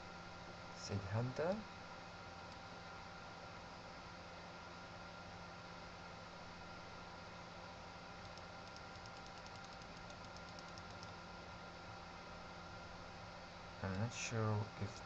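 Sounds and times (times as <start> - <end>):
faint hiss and electrical hum: 0.0 - 15.0
mouse scroll wheel ticking: 8.2 - 11.1.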